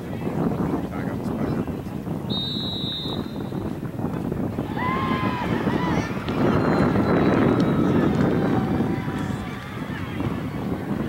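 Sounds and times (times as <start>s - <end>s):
wind buffeting microphone: 0.0s - 11.0s
sports whistle blast: 2.3s - 3.6s.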